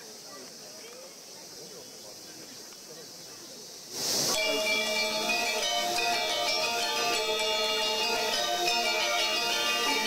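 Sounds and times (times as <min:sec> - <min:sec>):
gamelan music: 0:04.4 - 0:10.0
metallophones ringing: 0:04.4 - 0:10.0.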